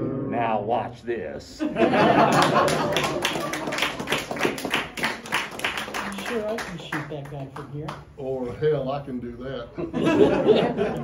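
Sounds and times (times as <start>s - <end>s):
audience clapping: 2.1s - 8.2s.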